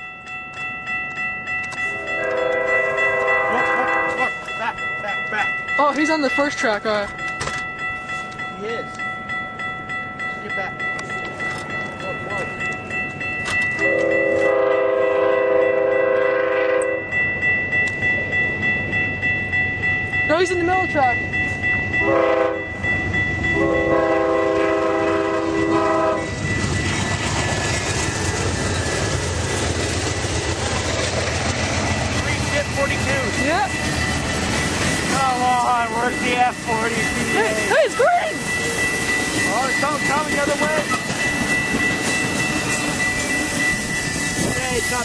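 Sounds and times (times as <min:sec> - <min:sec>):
railroad crossing bell ringing: 0:00.0 - 0:45.0
train passing at speed: 0:00.0 - 0:45.0
train air horn: 0:02.0 - 0:04.2, 0:13.8 - 0:17.0, 0:22.0 - 0:22.6, 0:23.6 - 0:26.3.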